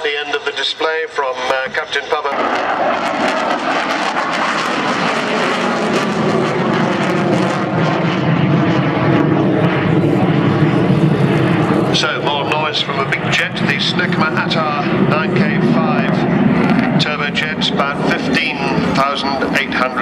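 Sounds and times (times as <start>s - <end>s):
jet engine roar: 0.0s - 20.0s.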